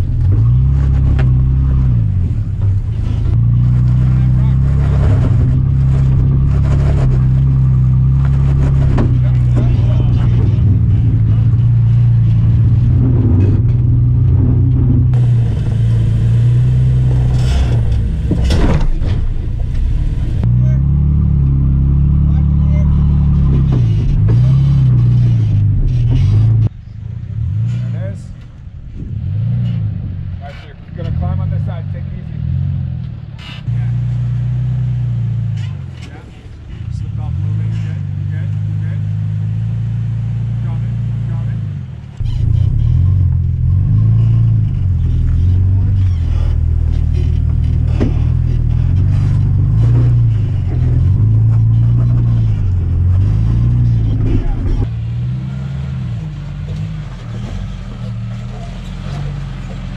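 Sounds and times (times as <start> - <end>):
off-road vehicle engine revving: 0.0 - 59.9
tyres knocking and scraping on rocks: 42.2 - 54.9.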